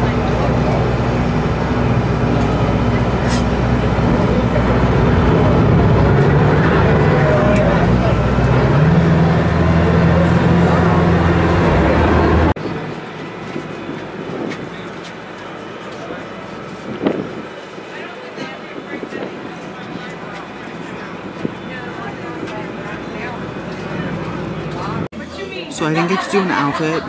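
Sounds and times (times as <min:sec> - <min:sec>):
boat engine droning: 0:00.0 - 0:27.0.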